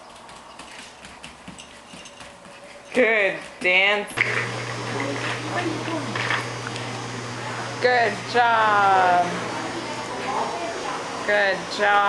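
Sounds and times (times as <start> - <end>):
steady low hum: 0.0 - 12.0
murmur of voices: 7.3 - 11.8.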